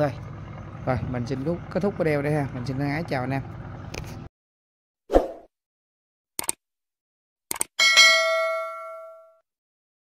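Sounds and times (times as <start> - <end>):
notification bell ding: 7.8 - 9.4.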